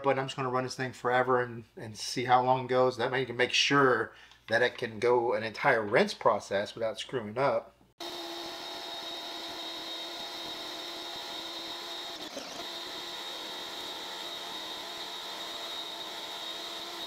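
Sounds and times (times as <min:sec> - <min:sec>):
pressure washer motor whining: 0:08.0 - 0:17.0.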